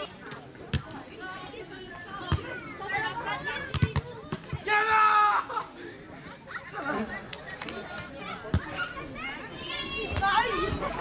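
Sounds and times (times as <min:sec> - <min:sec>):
loud shout: 0:04.6 - 0:05.7.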